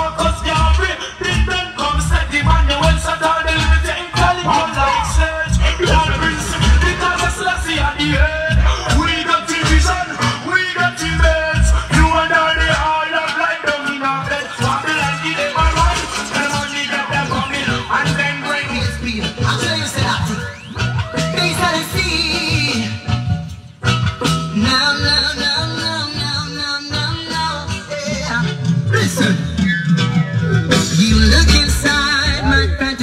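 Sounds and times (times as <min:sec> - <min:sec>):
deep bass line: 0:00.0 - 0:33.0
loud music over speakers: 0:00.0 - 0:33.0.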